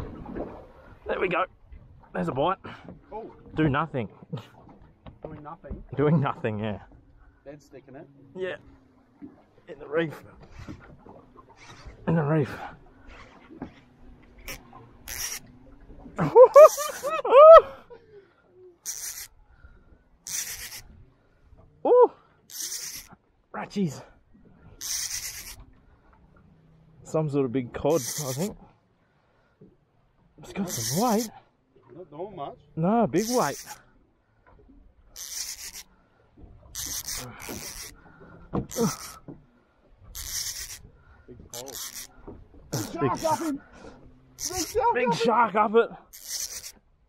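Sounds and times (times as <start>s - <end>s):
fishing reel drag hissing: 14.4s - 15.5s, 16.6s - 17.1s, 18.8s - 19.3s, 20.2s - 21.0s, 22.5s - 23.2s, 24.8s - 25.6s, 27.9s - 28.6s, 30.6s - 31.4s, 33.2s - 33.8s, 35.2s - 35.9s, 36.7s - 38.0s, 38.7s - 39.2s, 40.1s - 40.9s, 41.5s - 43.6s, 44.4s - 44.8s, 46.1s - 46.8s
man laughing: 16.2s - 18.2s, 42.8s - 43.6s, 44.5s - 45.6s
person calling out: 21.8s - 22.2s, 30.6s - 31.3s, 33.2s - 33.7s, 38.7s - 39.1s, 42.8s - 43.6s, 44.4s - 45.3s.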